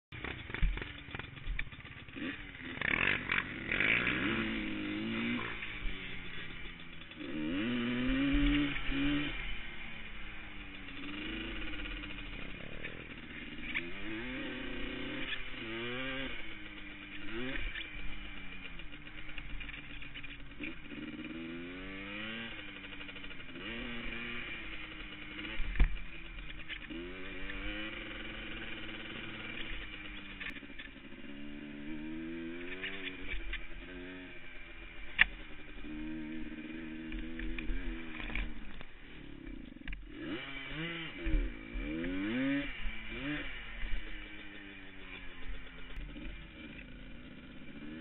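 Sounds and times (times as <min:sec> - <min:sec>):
atv engine revving: 0:00.1 - 0:48.0.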